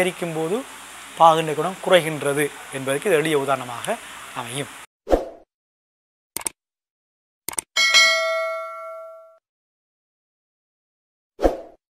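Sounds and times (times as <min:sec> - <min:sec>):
bright bell-like chime: 0:07.8 - 0:09.4.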